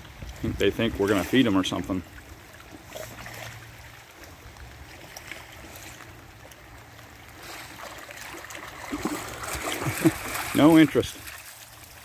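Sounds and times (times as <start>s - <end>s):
lake water lapping: 0.0s - 12.0s
dog splashing in water: 6.8s - 12.0s.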